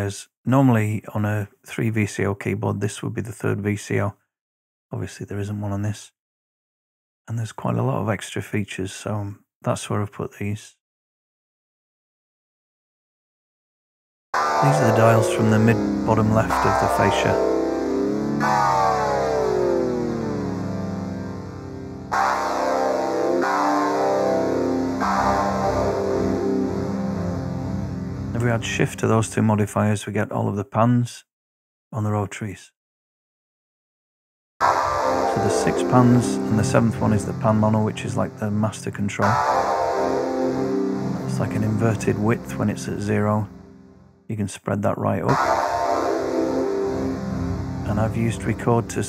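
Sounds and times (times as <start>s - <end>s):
synthesizer chords: 14.4s - 29.1s, 34.6s - 44.1s, 45.3s - 49.0s.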